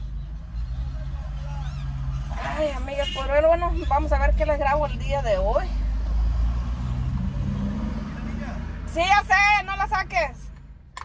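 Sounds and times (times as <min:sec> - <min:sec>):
car engine humming: 0:00.0 - 0:11.0.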